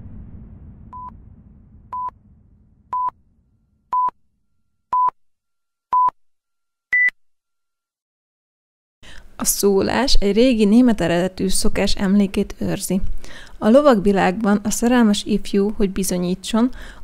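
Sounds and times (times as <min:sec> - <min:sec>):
low rumble: 0:00.0 - 0:04.2.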